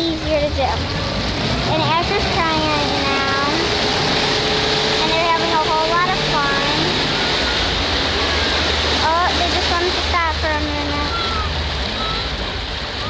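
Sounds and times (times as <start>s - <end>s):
motorboat engine drone: 0.0s - 13.0s
rushing water: 0.0s - 13.0s
voices calling out: 0.0s - 13.0s.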